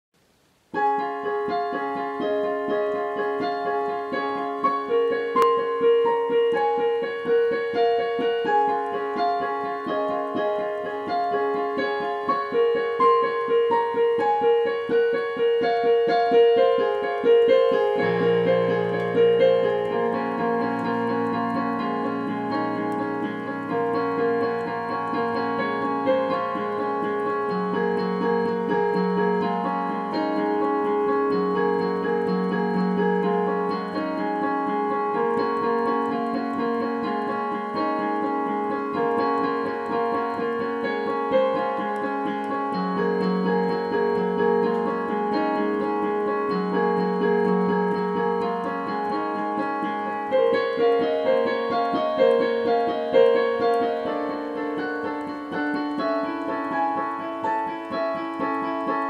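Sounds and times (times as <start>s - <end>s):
fast repeated piano notes: 0.6s - 59.0s.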